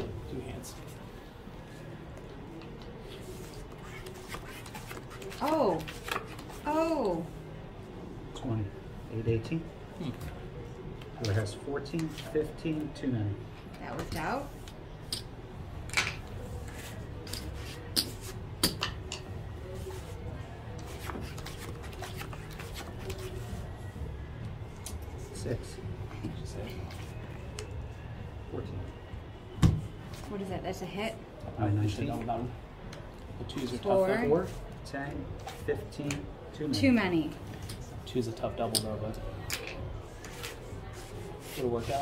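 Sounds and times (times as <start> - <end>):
room murmur: 13.3 - 33.5.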